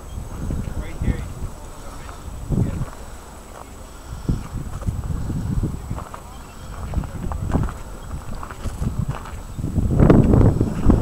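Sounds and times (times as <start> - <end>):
wind rumble on microphone: 0.0 - 11.0
footsteps on outdoor path: 0.2 - 11.0.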